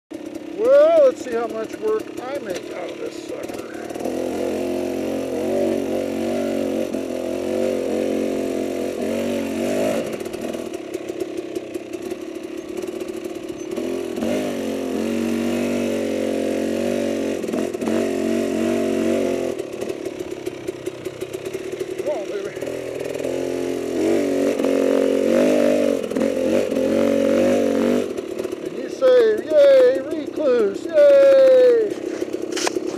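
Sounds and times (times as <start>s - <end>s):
dirt bike engine revving: 0.1s - 32.9s.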